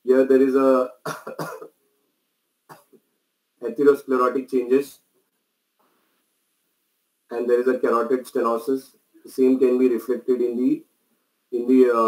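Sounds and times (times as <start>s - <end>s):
man coughing: 1.0s - 1.7s.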